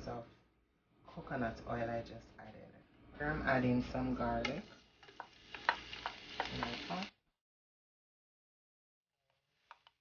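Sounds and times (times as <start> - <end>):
garlic sizzling in oil: 3.9 - 7.2.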